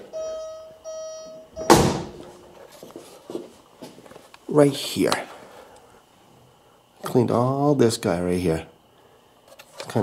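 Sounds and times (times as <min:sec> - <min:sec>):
steady high tone: 0:00.0 - 0:02.6
loud thud: 0:01.6 - 0:02.2.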